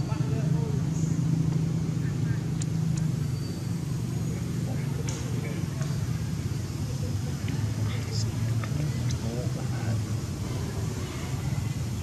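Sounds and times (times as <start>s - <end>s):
faint voices: 3.8s - 12.0s.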